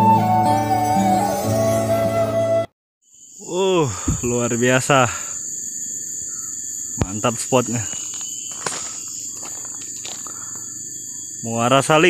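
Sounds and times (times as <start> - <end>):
insects droning: 3.0 - 12.0
low outdoor background: 3.2 - 12.0.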